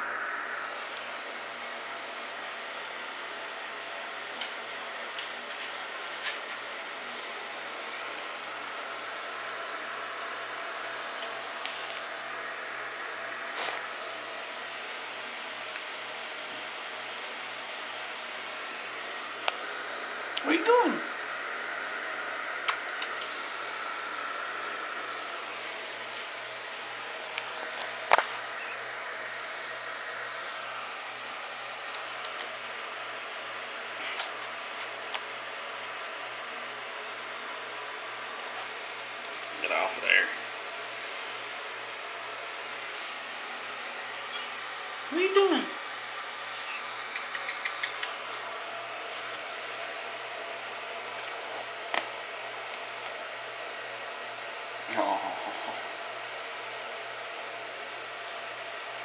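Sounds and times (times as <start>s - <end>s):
faint low hum: 0.0s - 59.0s
steady room hiss: 0.0s - 59.0s.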